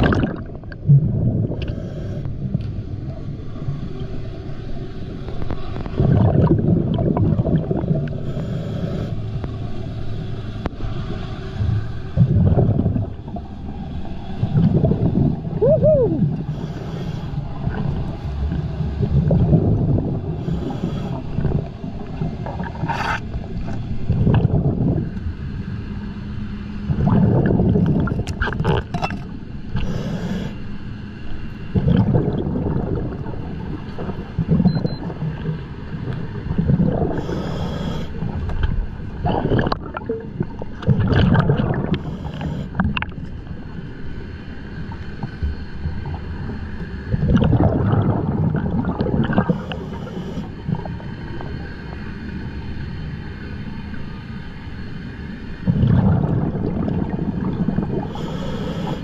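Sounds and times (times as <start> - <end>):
gurgling exhaled bubbles: 0.0 - 3.8, 5.3 - 8.8, 12.0 - 25.4, 26.9 - 30.6, 31.7 - 43.7, 44.8 - 52.2, 55.6 - 59.0
faint low hum: 0.0 - 59.0
hissing regulator inhalations: 20.4 - 21.3, 29.8 - 30.7, 37.2 - 38.2, 41.9 - 42.8, 49.4 - 50.6, 58.0 - 59.0.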